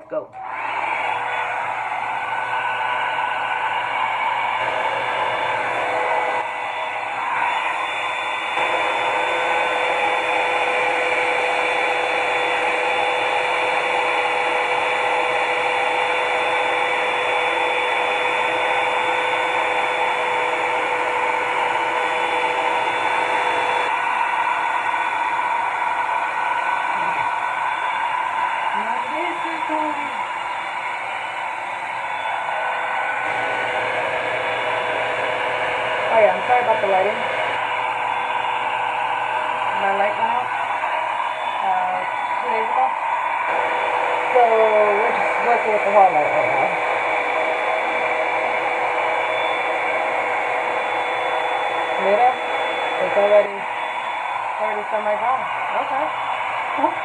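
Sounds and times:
hot-air brush dryer whirring: 0.0 - 57.0.

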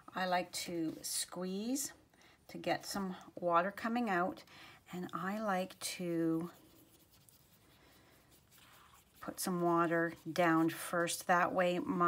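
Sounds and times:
brush tip brushing across card: 6.4 - 10.8.

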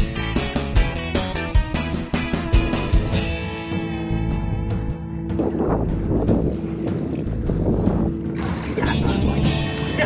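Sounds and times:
wind buffeting microphone: 5.2 - 10.0
water rushing and splashing: 5.3 - 10.0.

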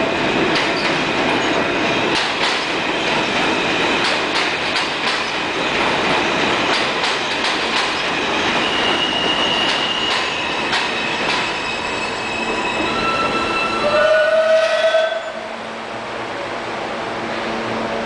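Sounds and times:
train propulsion whine: 0.0 - 18.0
train wheels on steel track: 0.0 - 18.0
high wheel squeal: 8.0 - 15.5.

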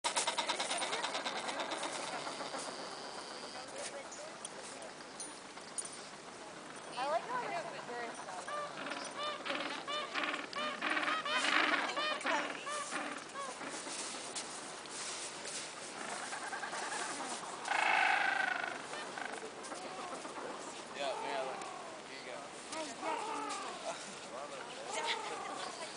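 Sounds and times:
penguins calling: 0.1 - 3.5, 8.4 - 14.2.

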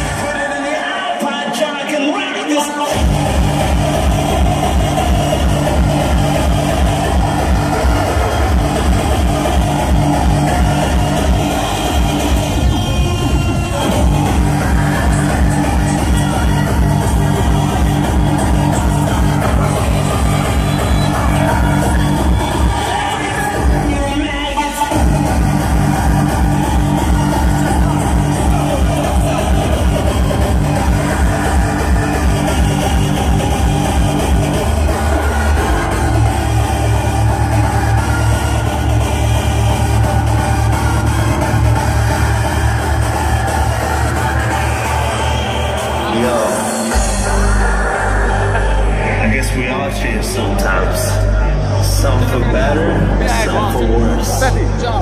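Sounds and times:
hardcore techno music: 0.0 - 55.0
fast pounding kick drum: 2.9 - 13.2, 13.8 - 24.0.

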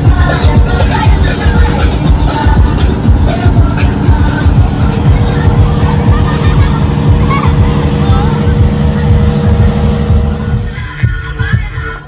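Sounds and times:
engine rumble: 0.0 - 12.0
crowd voices: 3.3 - 10.9.

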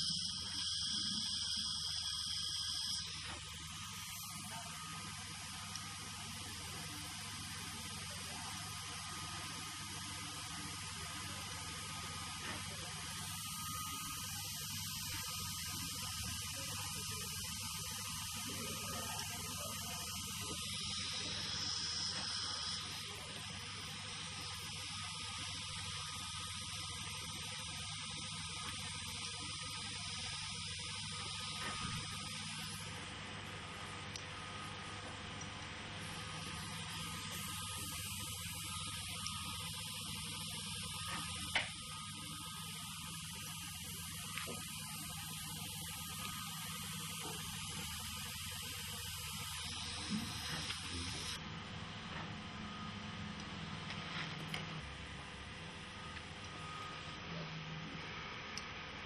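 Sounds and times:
electrical hum: 0.0 - 59.0.

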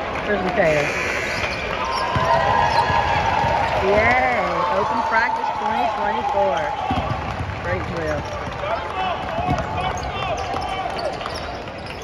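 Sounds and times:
basketballs dribbling on hardwood: 1.9 - 12.0.

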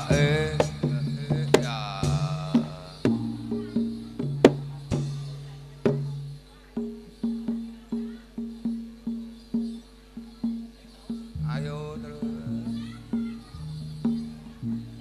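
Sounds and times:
gamelan struck metal notes: 0.0 - 15.0.

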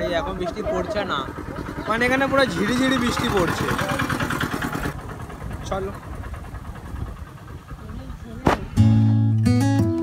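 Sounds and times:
auto-rickshaw engine rumble: 0.0 - 10.0.

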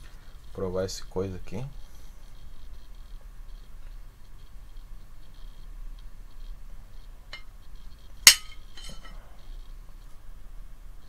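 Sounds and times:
knife clinking on ceramic plate: 8.3 - 9.2.

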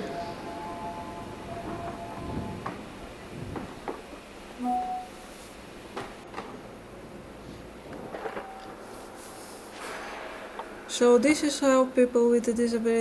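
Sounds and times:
station background noise: 0.0 - 13.0.

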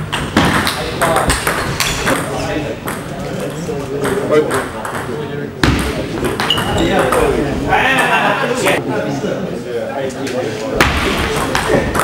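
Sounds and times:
indistinct chatter: 0.6 - 12.0
table tennis balls clicking: 5.7 - 7.4.

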